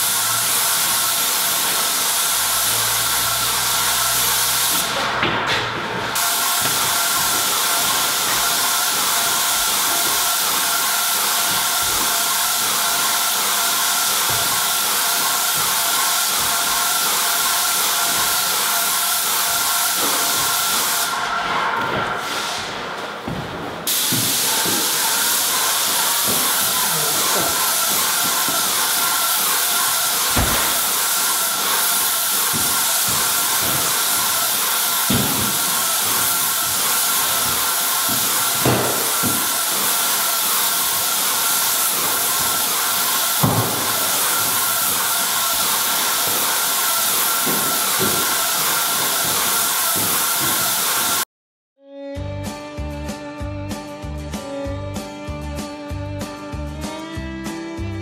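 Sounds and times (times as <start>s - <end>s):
paint sprayer hissing: 0.0s - 5.2s, 6.0s - 51.2s.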